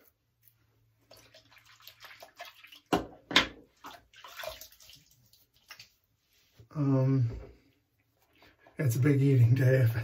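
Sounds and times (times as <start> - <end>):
water splashing in a sink: 1.0 - 6.2.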